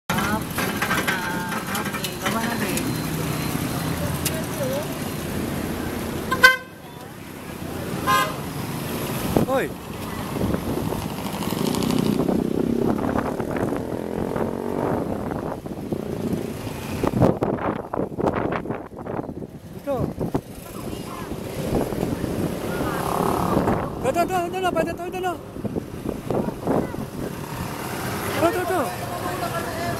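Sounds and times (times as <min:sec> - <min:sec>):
motorcycle engine and road noise: 0:00.0 - 0:29.9
street noise: 0:00.0 - 0:29.9
voices: 0:00.1 - 0:08.8, 0:19.7 - 0:29.9.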